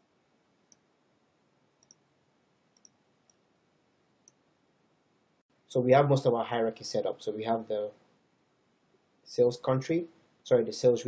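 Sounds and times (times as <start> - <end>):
computer mouse clicks: 1.8 - 2.0.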